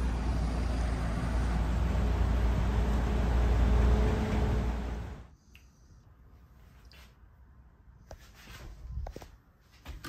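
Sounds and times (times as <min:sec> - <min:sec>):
low rumble of passing cars: 0:00.0 - 0:05.4.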